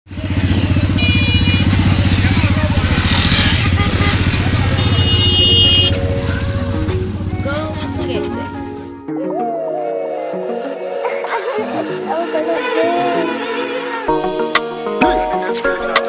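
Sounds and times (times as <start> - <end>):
engines pulsing: 0.1 - 8.9
music: 5.3 - 16.0.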